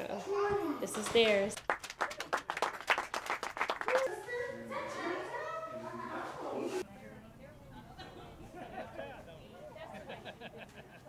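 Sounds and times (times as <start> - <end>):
group talking and calling out: 3.9 - 10.7.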